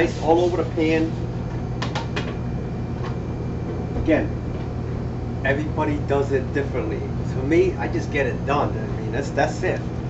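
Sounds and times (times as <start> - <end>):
kitchen ventilation hum: 0.0 - 10.0.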